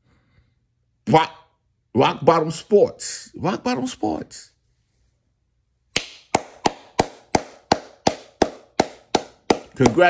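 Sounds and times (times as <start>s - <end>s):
man's hands clapping slowly: 6.0s - 10.0s.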